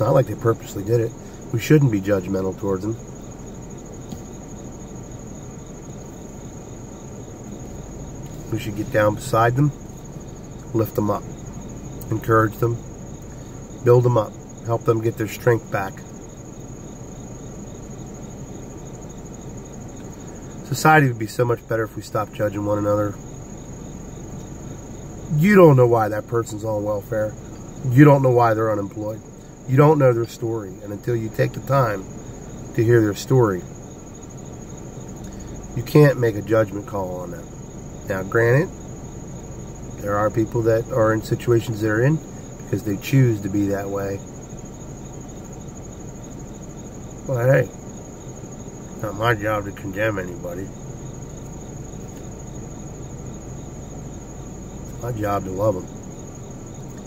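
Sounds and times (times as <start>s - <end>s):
insects chirping: 0.0s - 57.0s
low background hum: 0.0s - 57.0s
low steady rumble: 0.0s - 57.0s.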